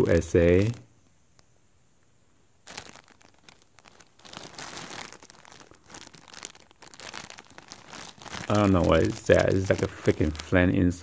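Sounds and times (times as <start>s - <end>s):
plastic bag crinkling: 0.0s - 1.4s, 2.5s - 11.0s.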